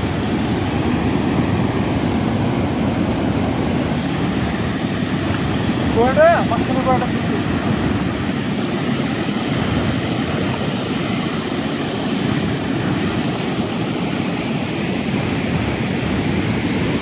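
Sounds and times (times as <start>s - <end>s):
water rushing over a dam: 0.0s - 17.0s.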